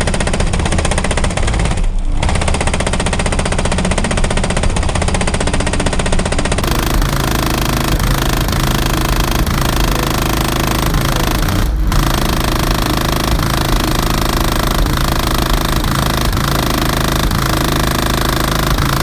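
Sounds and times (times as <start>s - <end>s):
deep bass rattling buzz: 0.0s - 19.0s.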